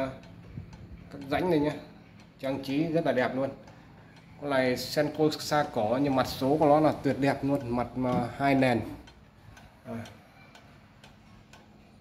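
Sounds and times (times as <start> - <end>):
wall clock ticking: 0.0 - 12.0.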